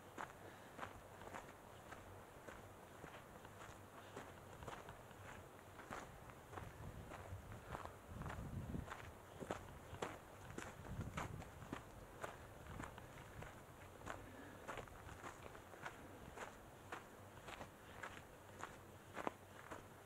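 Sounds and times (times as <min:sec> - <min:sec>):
footsteps on gravel trail: 0:00.0 - 0:20.0.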